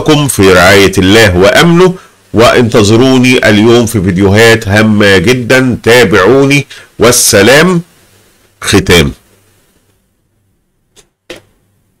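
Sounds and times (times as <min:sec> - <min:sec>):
faint room tone: 0:00.0 - 0:12.0.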